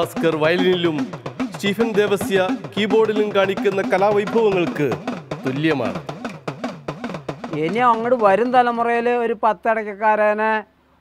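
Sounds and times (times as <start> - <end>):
hourglass drum struck with stick: 0.0 - 8.8.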